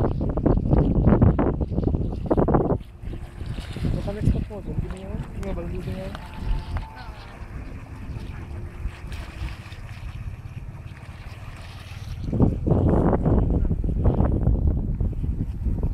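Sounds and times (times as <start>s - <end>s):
wind buffeting microphone: 0.0s - 15.9s.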